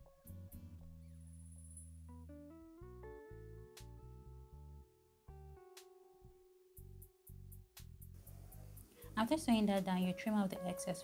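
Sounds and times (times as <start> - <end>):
quiet guitar music: 0.0 - 4.9.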